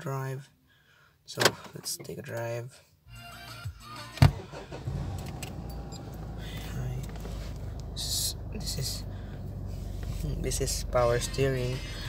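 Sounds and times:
car engine and road rumble: 3.8 - 12.0.

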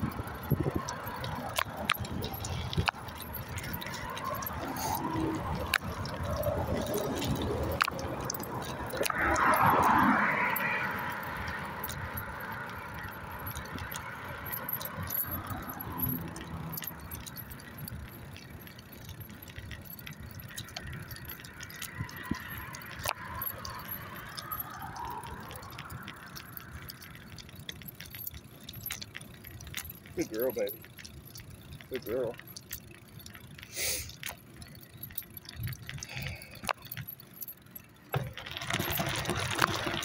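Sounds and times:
cars passing: 0.0 - 40.0
light metallic jingling: 0.0 - 40.0.

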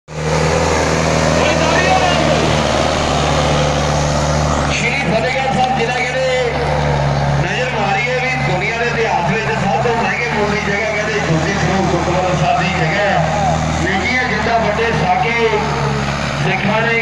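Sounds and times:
tractor diesel engine under load: 0.0 - 17.0
crowd voices: 0.2 - 17.0.

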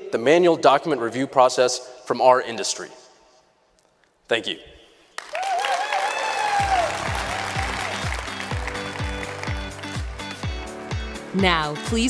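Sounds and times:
audience applauding: 5.2 - 10.4.

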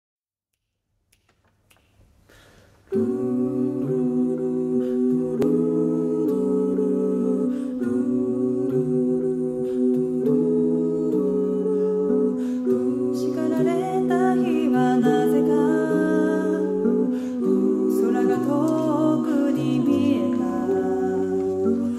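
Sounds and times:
a cappella group singing chords: 2.3 - 21.9.

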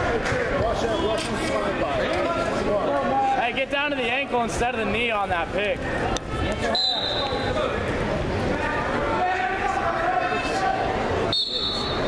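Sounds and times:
hall babble: 0.0 - 12.0
spectators and coaches shouting: 0.0 - 12.0.

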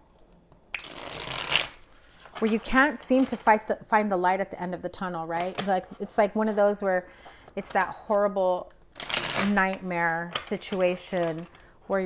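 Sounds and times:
cards being shuffled: 0.8 - 3.3.

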